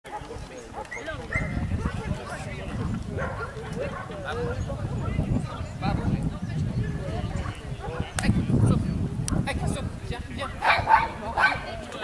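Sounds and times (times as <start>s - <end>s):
dog barking: 0.1s - 5.2s, 7.4s - 9.4s, 10.6s - 11.7s
people talking: 0.1s - 12.0s.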